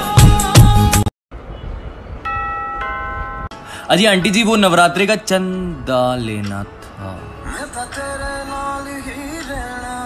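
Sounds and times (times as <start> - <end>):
two-note doorbell chime: 2.2 - 3.5.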